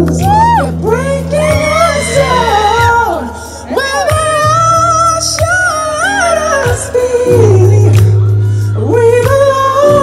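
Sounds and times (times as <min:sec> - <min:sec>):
instrumental backing track: 0:00.0 - 0:10.0
man singing soul-style: 0:00.0 - 0:10.0.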